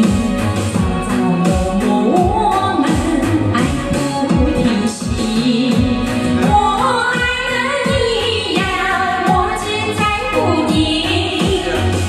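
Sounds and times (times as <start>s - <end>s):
karaoke backing track with beat: 0.0s - 12.0s
women singing into microphones: 0.0s - 12.0s.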